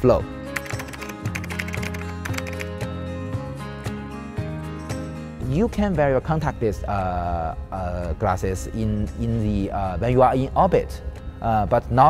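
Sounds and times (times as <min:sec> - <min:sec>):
background music with held tones: 0:00.0 - 0:12.0
keyboard key clicks: 0:00.6 - 0:02.7.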